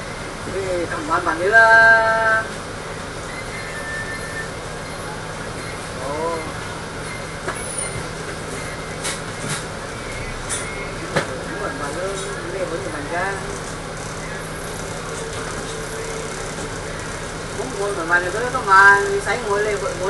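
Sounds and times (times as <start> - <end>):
bus engine humming: 0.0 - 20.0.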